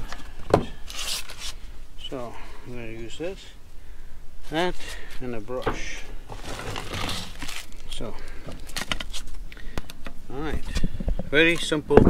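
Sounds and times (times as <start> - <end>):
materials rustling: 0.0 - 1.8, 4.4 - 11.7.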